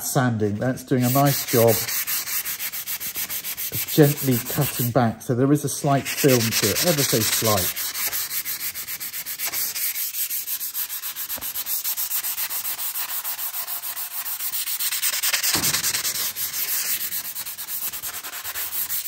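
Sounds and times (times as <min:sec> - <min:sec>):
sandpaper scraping on wood: 0:00.5 - 0:05.0, 0:05.7 - 0:19.0.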